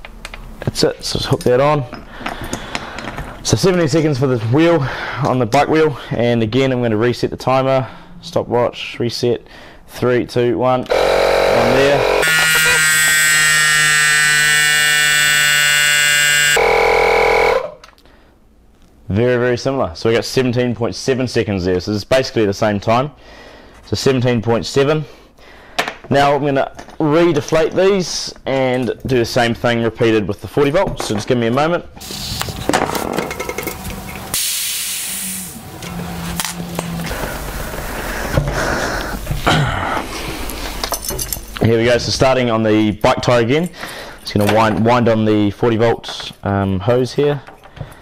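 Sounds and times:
clicks and knocks handling wheels: 0.0 - 3.5
tyre inflator compressor whining: 10.9 - 17.8, 32.0 - 40.5
air hissing from tyre valves: 32.0 - 32.7, 33.6 - 39.4.

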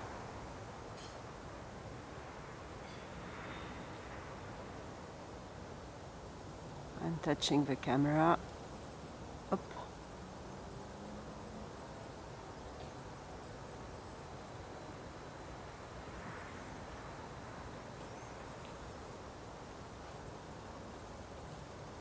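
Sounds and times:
thin high-pitched whine: 0.0 - 8.4, 9.5 - 22.0
faint background hiss: 0.0 - 22.0.

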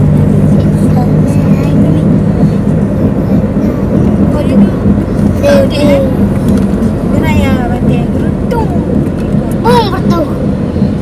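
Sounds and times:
vehicle driving on road: 0.0 - 11.0.

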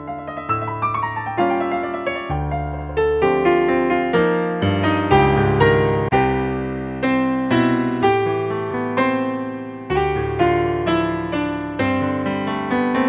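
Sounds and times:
upright piano playing chords: 0.0 - 13.0.

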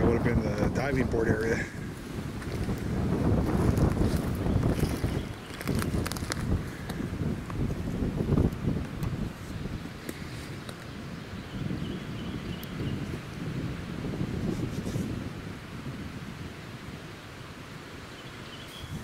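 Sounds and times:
leaves rustling: 0.0 - 19.0
wind gusting over microphone: 0.0 - 19.0.

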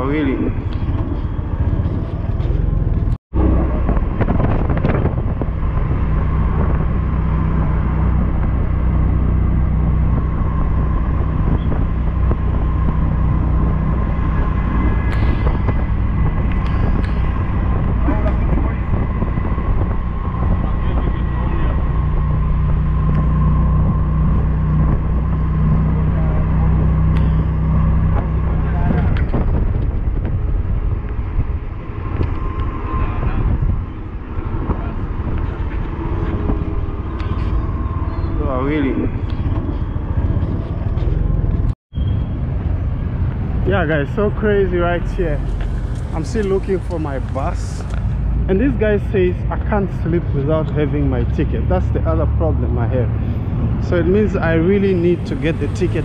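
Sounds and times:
vehicle engine drone and road noise: 0.0 - 56.0.

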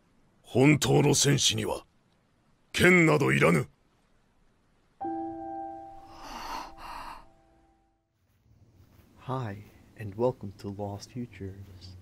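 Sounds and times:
sustained ringing tone: 5.0 - 8.0
breathy gasps: 6.0 - 7.4.

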